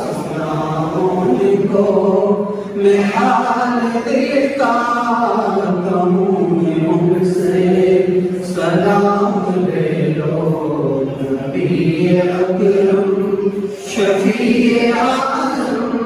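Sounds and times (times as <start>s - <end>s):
man chanting into a microphone: 0.0s - 16.0s.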